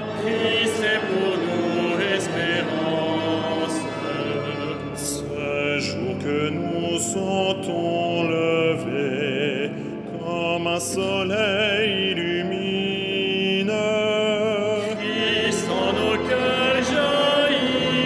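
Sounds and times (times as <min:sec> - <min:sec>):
men singing liturgical chant: 0:00.0 - 0:18.0.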